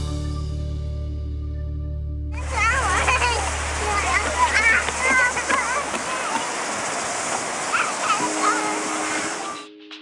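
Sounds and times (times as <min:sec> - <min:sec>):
small child's voice: 0:02.4 - 0:06.6, 0:07.6 - 0:09.7
surf rushing on beach: 0:02.4 - 0:09.6.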